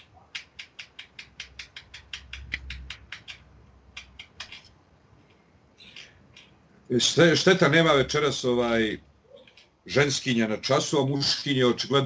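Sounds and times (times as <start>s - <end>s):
rapid light clicks: 0.0s - 6.6s.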